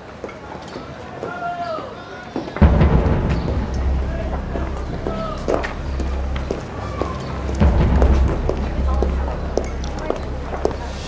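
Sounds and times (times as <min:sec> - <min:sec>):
faint voices: 0:00.0 - 0:11.0
deep boom with low rumble: 0:02.6 - 0:11.0.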